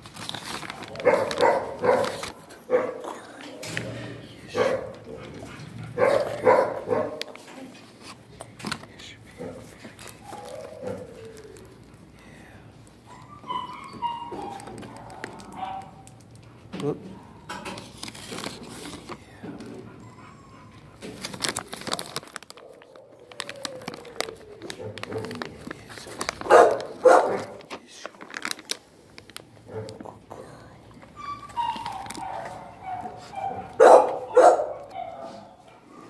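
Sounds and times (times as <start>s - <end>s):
dog whining and moaning: 10.2s - 11.9s, 13.0s - 16.3s, 19.7s - 21.7s, 22.9s - 25.4s, 31.0s - 36.0s.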